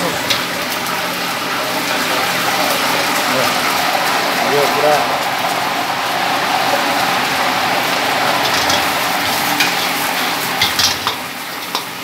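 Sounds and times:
meat sizzling in a wok: 0.0 - 12.0
person speaking: 4.4 - 5.4.

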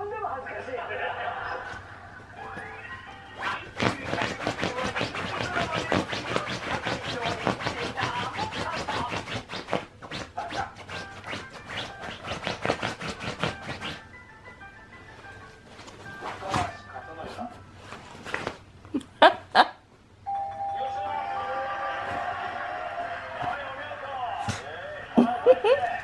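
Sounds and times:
dog claws scraping cotton sheet: 3.4 - 14.1.

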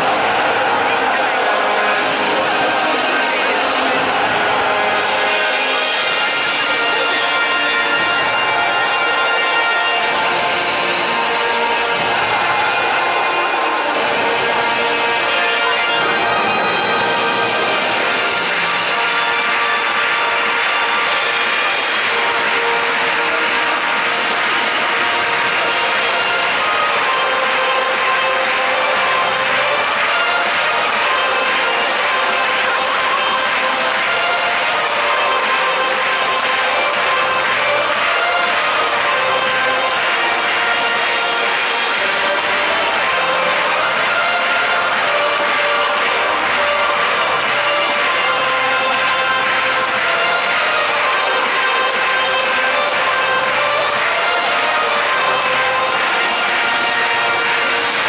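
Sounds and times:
large crowd noise: 0.0 - 58.0
music over stadium loudspeakers: 0.0 - 58.0.

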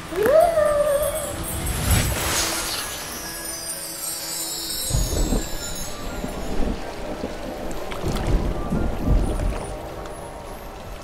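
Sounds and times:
wind rumbling on microphone: 4.7 - 11.0.

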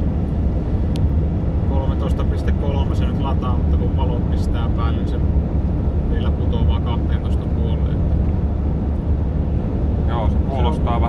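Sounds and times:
van engine and road noise: 0.0 - 11.0
man talking: 1.7 - 5.3, 6.1 - 8.0, 10.1 - 11.0.

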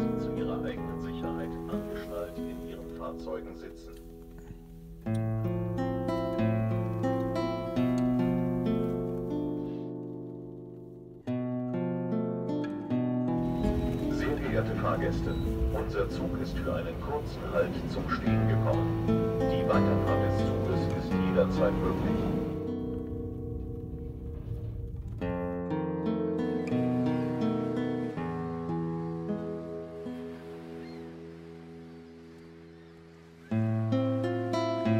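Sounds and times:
solo guitar playing slowly: 0.0 - 34.9.

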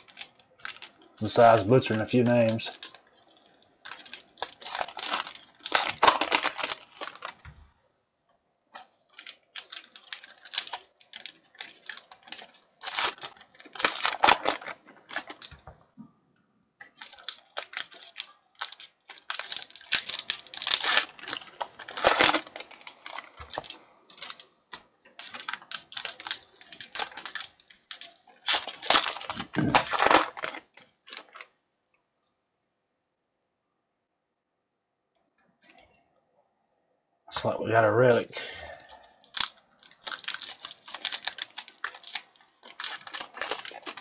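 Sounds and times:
cards rustling and clicking: 0.0 - 7.6, 8.7 - 15.7, 16.8 - 31.5, 38.9 - 44.0
wrapper crinkling as torn: 0.0 - 7.6, 8.7 - 15.7, 16.8 - 31.6, 38.8 - 44.0.

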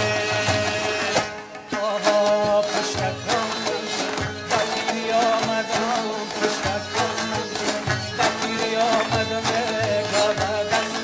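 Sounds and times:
bowed fiddle: 0.0 - 11.0
plucked lutes: 0.0 - 11.0.

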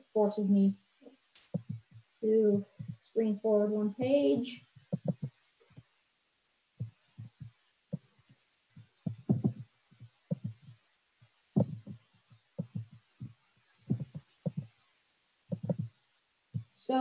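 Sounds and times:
soft thumps and knocks: 1.4 - 3.1, 4.7 - 5.9, 6.8 - 10.9, 11.6 - 14.8, 15.5 - 16.8.

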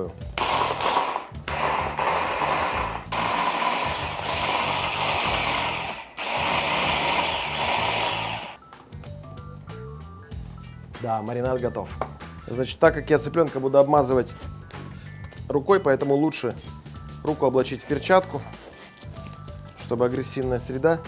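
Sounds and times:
hand blender grinding: 0.4 - 8.6.

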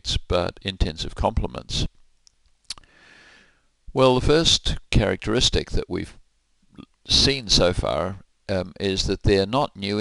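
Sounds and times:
mouth click: 2.2 - 2.9
soft breath in: 2.8 - 3.7.

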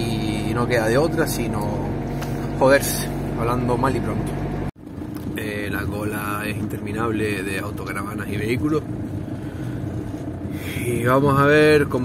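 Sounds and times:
man talking: 0.0 - 2.0, 5.4 - 8.8
vehicle engines rumbling: 0.0 - 12.0.

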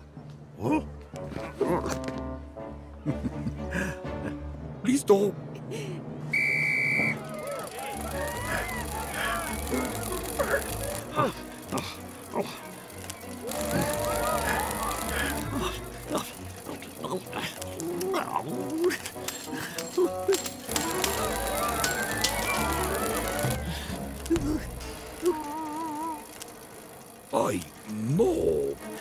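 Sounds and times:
cartoon background music: 0.5 - 5.4, 7.2 - 26.2
wordless vocal grunts and murmurs: 0.6 - 2.0, 15.5 - 20.4.

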